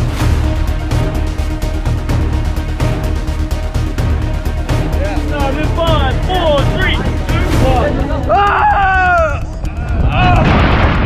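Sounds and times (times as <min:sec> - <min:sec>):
person yelling: 0:06.1 - 0:10.6.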